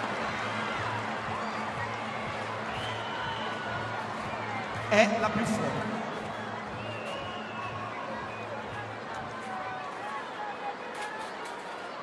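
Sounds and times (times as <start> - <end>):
faint public address music: 0.0 - 12.0
murmur of distant voices: 0.0 - 12.0.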